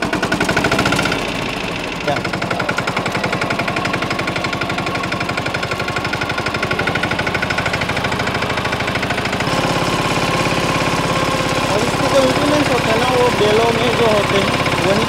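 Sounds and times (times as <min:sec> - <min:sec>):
tractor diesel engine thudding: 0:00.0 - 0:15.0.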